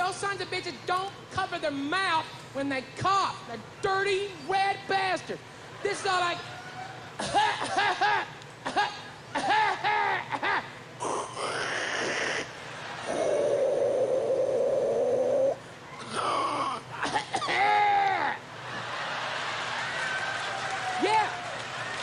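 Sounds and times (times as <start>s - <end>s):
man imitating coughing: 7.2s - 12.5s, 16.1s - 18.4s
audience laughter: 18.6s - 20.1s.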